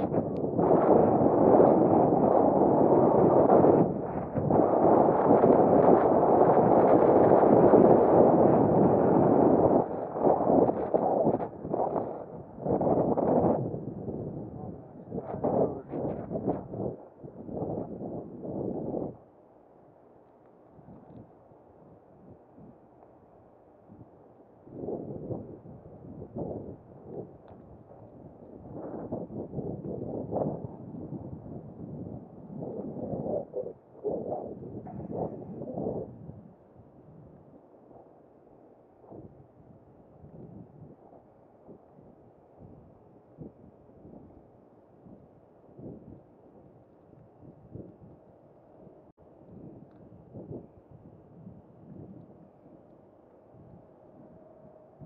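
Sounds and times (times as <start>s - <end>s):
wind buffeting microphone: 0.0s - 19.3s, 23.8s - 38.2s, 39.0s - 55.0s.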